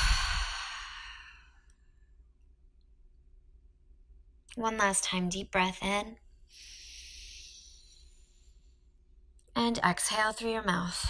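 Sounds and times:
woman exhaling: 0.0s - 1.5s.

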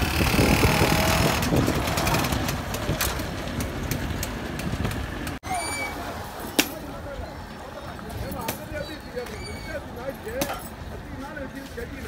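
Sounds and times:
wind rumbling on microphone: 0.0s - 6.3s.

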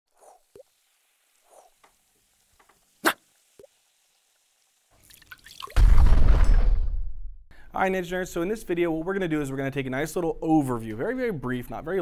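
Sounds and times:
small liquid drips: 0.2s - 5.8s
loud sudden boom: 5.8s - 7.4s.

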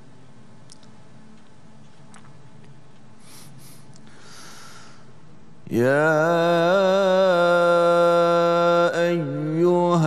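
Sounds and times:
man breathing in: 3.2s - 5.2s.

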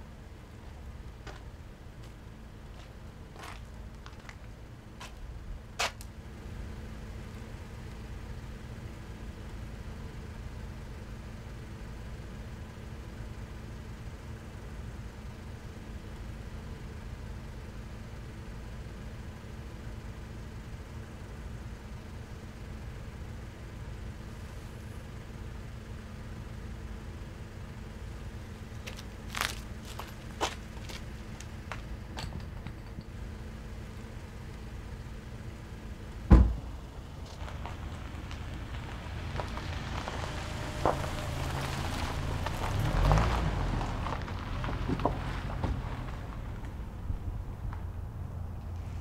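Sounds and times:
car engine idling: 0.0s - 49.0s.

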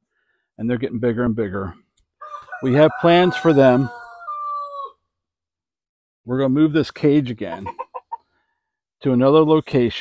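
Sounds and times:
rooster crowing: 2.2s - 5.0s.

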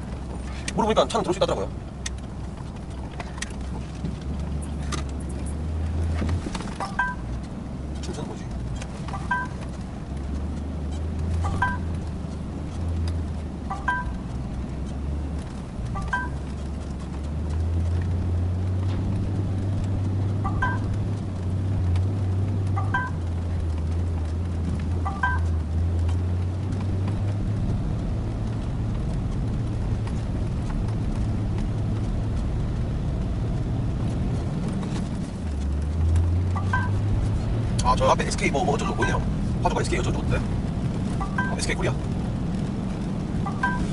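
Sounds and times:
diesel truck engine hum: 0.0s - 43.9s.

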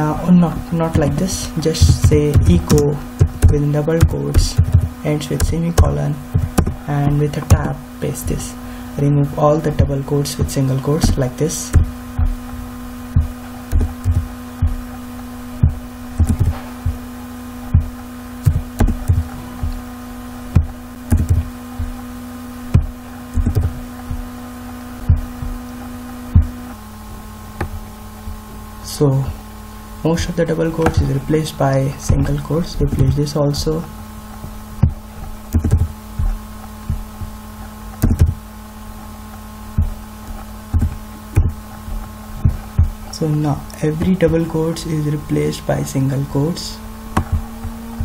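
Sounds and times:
electrical hum: 0.0s - 48.0s
soft low thumps: 0.0s - 48.0s
keyboard and mouse clicks: 20.6s - 21.5s, 34.3s - 37.0s, 38.0s - 38.4s.

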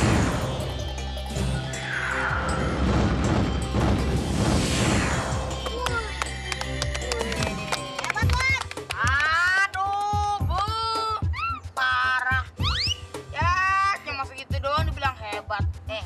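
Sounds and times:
music: 0.0s - 16.0s
falling swooshing sweeps: 1.7s - 6.0s.

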